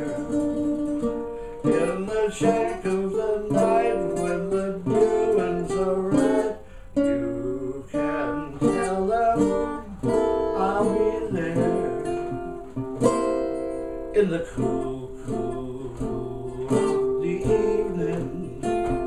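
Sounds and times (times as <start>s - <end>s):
banjo strumming chords: 0.0s - 19.0s.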